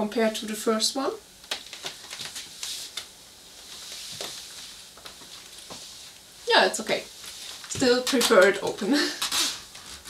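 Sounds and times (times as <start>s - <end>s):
faint rustling of shiny fabric: 2.3s - 8.0s.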